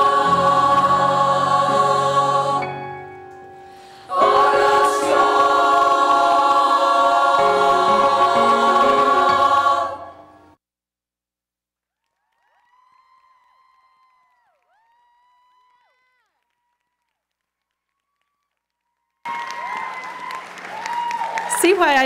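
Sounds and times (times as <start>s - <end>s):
audience applause: 12.3s - 22.0s
woman speaking: 21.5s - 22.0s.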